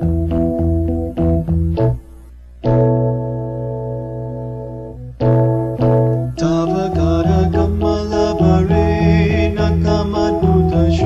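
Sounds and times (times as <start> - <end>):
devotional keyboard music: 0.0 - 11.0.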